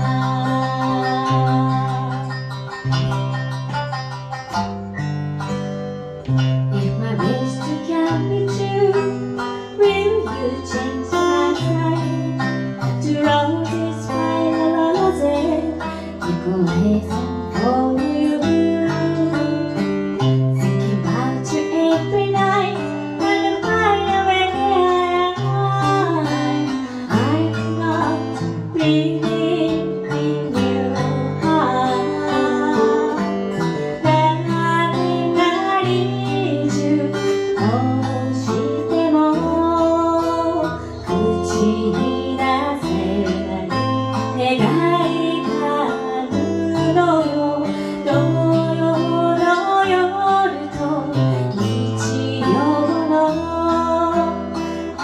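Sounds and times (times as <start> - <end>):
woman singing a slow ballad: 0.0 - 2.5, 6.7 - 55.0
plucked acoustic guitar: 0.0 - 55.0
shamisen: 0.0 - 55.0.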